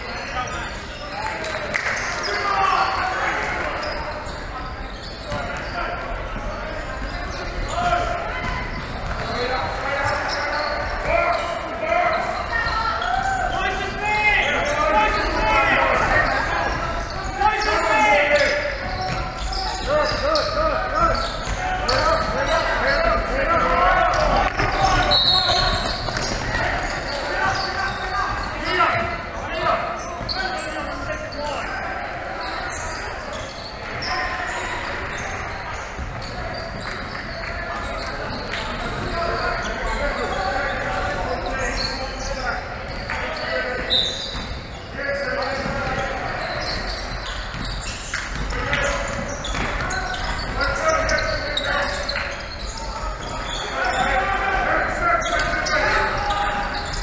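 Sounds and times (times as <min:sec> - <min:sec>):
echoing voices: 0:00.0 - 0:57.0.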